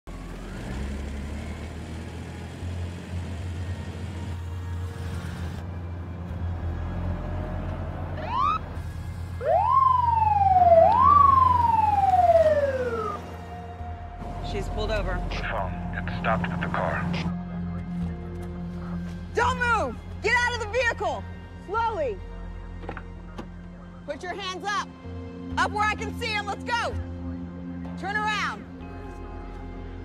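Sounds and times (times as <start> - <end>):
police siren wailing: 8.1 - 18.3.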